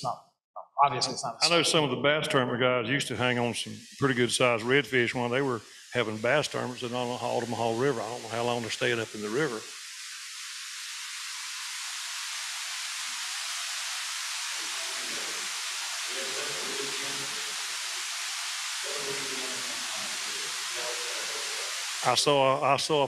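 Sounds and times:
faint muffled voices: 0:00.0 - 0:09.6, 0:16.1 - 0:17.4, 0:18.8 - 0:23.0
electronic noise hiss: 0:01.0 - 0:23.0.

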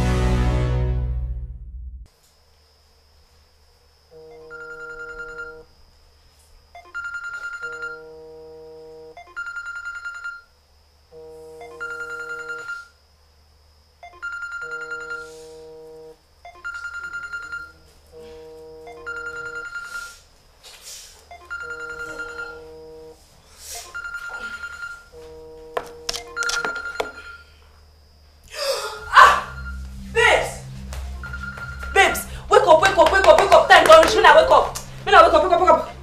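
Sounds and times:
electronic phone ringtone: 0:04.2 - 0:05.7, 0:06.8 - 0:10.5, 0:11.2 - 0:13.0, 0:14.0 - 0:20.2, 0:21.3 - 0:23.2, 0:23.9 - 0:27.6, 0:29.4 - 0:29.9, 0:31.2 - 0:32.3.

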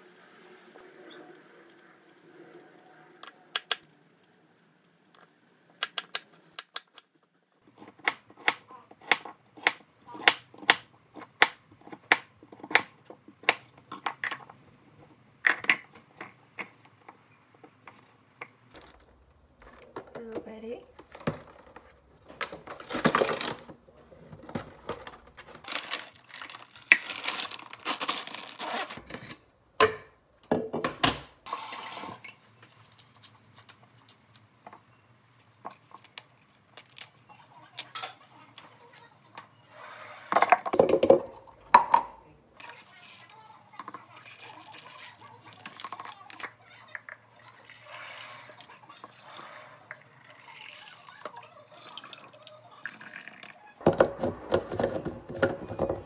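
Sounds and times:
rustling and handling noise: 0:15.9 - 0:29.6, 0:31.6 - 0:39.4, 0:42.6 - 0:47.3.

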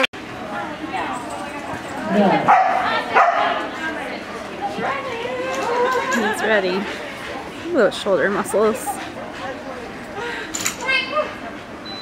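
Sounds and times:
people talking: 0:00.0 - 0:11.7.

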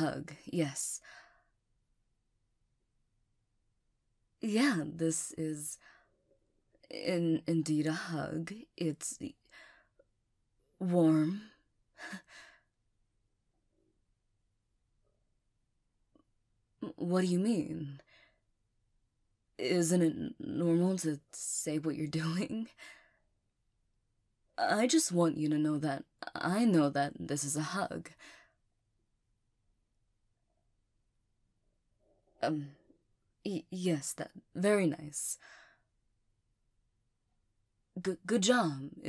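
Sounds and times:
woman's voice and breath: 0:11.2 - 0:12.7, 0:22.7 - 0:23.2, 0:28.1 - 0:28.6, 0:35.3 - 0:35.9.

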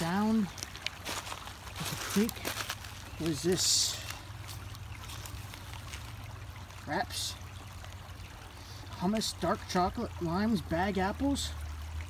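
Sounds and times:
creek water trickling over stones: 0:00.0 - 0:12.0.

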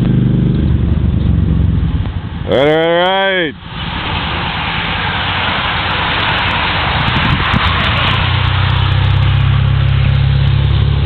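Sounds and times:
vehicle engine running: 0:00.0 - 0:11.0
wind and road noise: 0:00.0 - 0:11.0.

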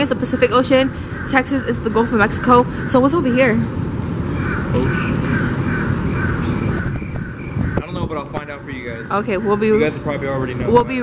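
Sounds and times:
bird cawing: 0:00.0 - 0:03.6, 0:04.3 - 0:10.1
steady low rumble: 0:00.0 - 0:11.0.

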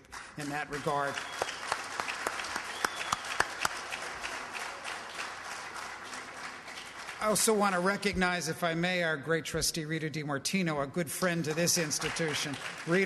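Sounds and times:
audience applauding: 0:00.0 - 0:08.4, 0:11.2 - 0:13.0.

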